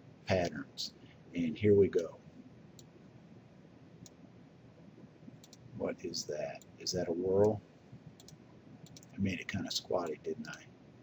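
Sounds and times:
computer mouse clicks: 5.4 - 5.7, 8.2 - 9.2, 10.4 - 10.6.

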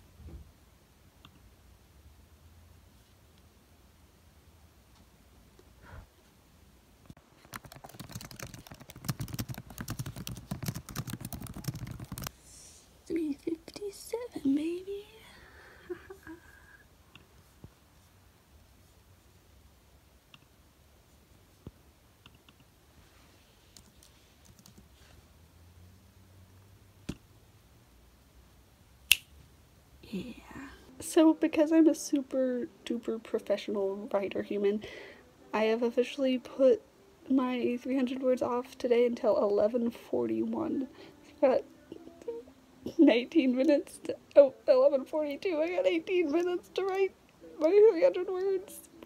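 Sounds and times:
fast typing on laptop keyboard: 7.4 - 12.3, 23.8 - 24.9
sharp click: 29.1 - 29.3.

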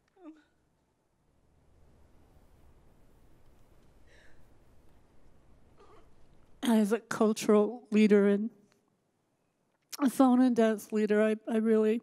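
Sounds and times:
faint breath: 4.0 - 4.8.

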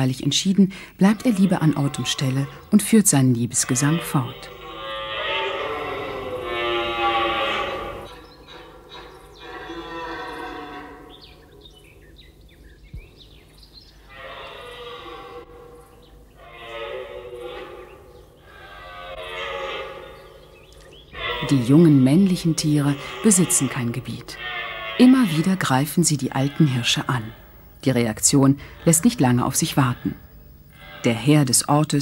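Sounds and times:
deer stag roaring: 3.6 - 11.3, 14.1 - 27.5, 30.8 - 31.7.

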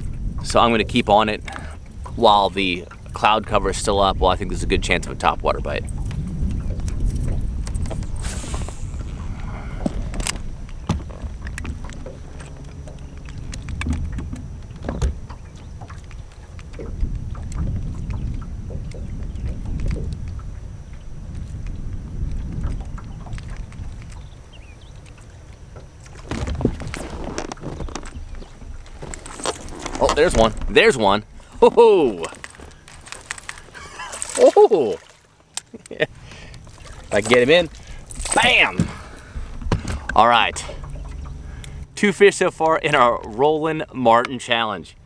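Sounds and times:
water around a boat: 0.0 - 45.0
wind: 0.0 - 45.0
handling noise: 5.9 - 20.5, 21.3 - 40.2.

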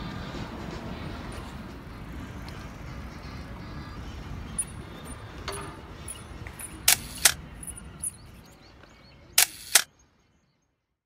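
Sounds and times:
faint outdoor background: 0.0 - 11.0
camera shutter double click: 6.8 - 7.4, 9.4 - 9.9.

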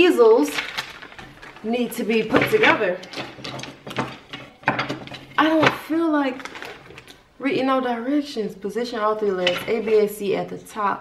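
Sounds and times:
metal parts clicking on a table: 9.4 - 10.0.

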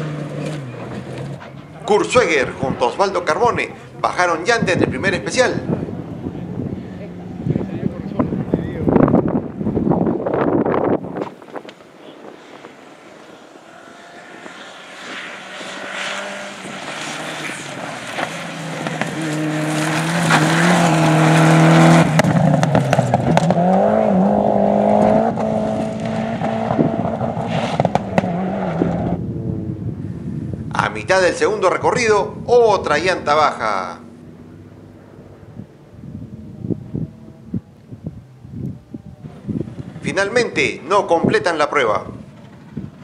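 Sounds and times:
rally car engine revving: 0.0 - 30.7.

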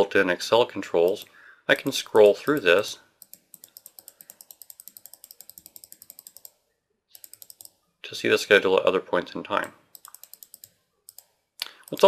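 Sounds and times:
rapid computer mouse clicks: 1.1 - 7.8, 9.6 - 12.0.

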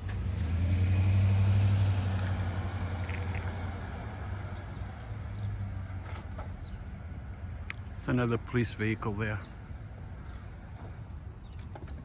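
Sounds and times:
outdoor street rumble: 0.0 - 12.0.

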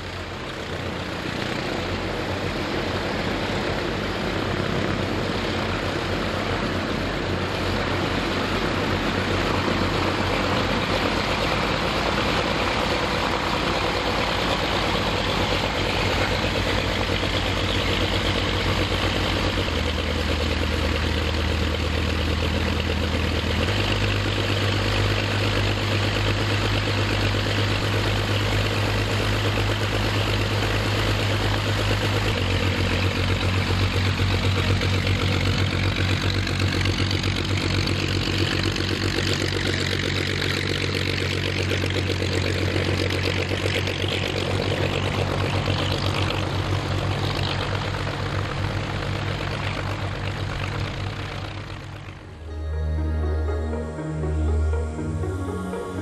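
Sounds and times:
piston aircraft engines idling: 0.0 - 56.0.

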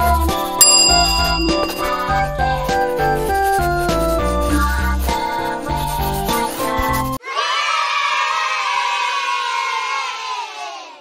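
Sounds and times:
children cheering: 7.2 - 11.0.

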